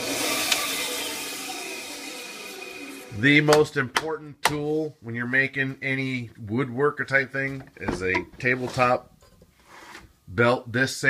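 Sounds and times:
bandsaw running: 0.0s - 3.4s.

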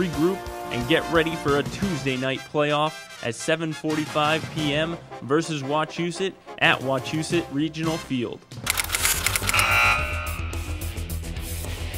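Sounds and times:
rock theme music with steady beat: 8.6s - 11.9s
held high tone: 8.8s - 11.0s.

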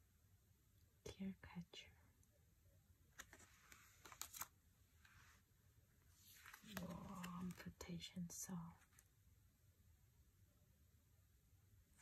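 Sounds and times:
cards clicking and sliding: 3.2s - 4.5s
soft murmured voice: 6.4s - 9.1s.

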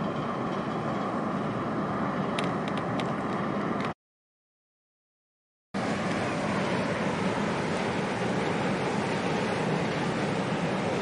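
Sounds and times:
harbour water: 0.0s - 4.0s, 5.8s - 11.0s.

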